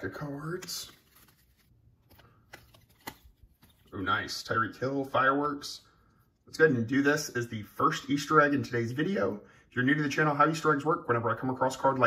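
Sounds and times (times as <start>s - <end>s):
trading cards being flicked: 0.6s - 3.9s.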